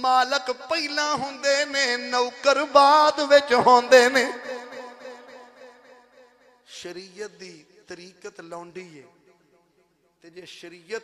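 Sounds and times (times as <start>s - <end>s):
man chanting: 0.0s - 6.0s, 6.7s - 9.4s, 10.2s - 11.0s.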